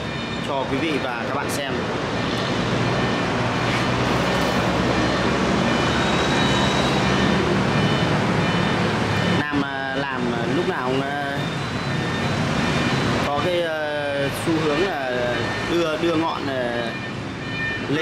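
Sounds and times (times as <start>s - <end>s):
passing traffic: 0.0s - 18.0s.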